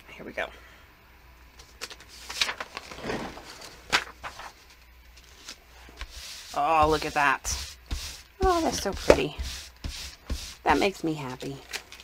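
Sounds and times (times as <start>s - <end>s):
paper rustling: 1.6s - 12.0s
paper tapping on table: 7.9s - 10.5s.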